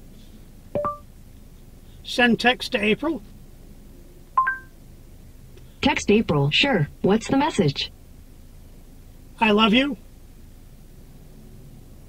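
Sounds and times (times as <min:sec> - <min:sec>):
two-note electronic chime: 0:00.8 - 0:01.0.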